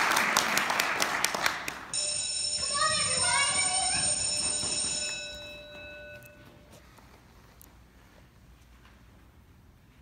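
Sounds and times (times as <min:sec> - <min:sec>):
ringing tone: 0:02.0 - 0:06.8.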